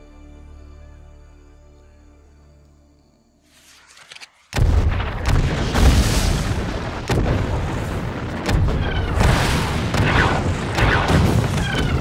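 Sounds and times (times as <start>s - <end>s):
loud explosions: 4.5s - 12.0s.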